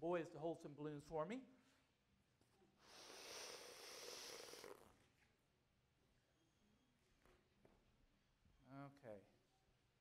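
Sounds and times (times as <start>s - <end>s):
person blowing into a balloon: 2.8s - 5.0s.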